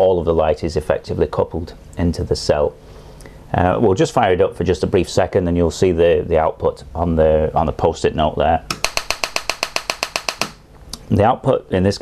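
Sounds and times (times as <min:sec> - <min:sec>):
laser electrical discharges snapping: 0:08.7 - 0:10.6.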